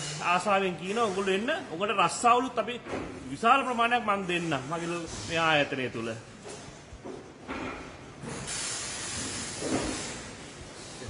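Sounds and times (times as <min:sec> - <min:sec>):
steady hiss: 0:08.2 - 0:11.0.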